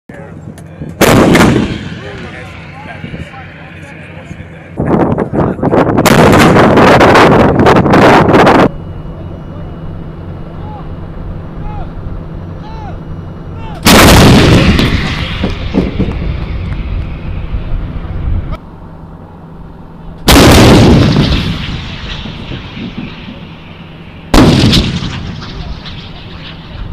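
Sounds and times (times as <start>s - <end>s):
rumbling echo: 0.8s - 8.5s, 13.8s - 18.6s, 20.3s - 26.9s
howitzer firing boom: 1.0s - 8.7s, 13.8s - 18.6s, 20.2s - 26.9s.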